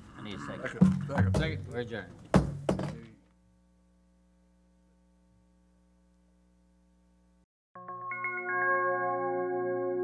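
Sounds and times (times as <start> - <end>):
wooden gavel knocks: 0.8 - 1.6, 2.3 - 3.0.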